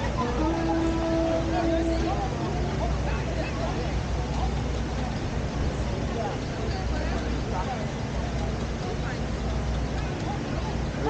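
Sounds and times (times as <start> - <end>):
indistinct chatter of people: 0.0 - 11.0
low rumble of traffic: 0.0 - 11.0.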